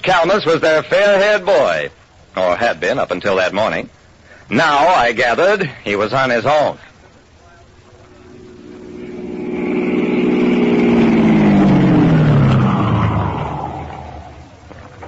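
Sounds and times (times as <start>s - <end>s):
car engine passing by: 8.1s - 14.6s.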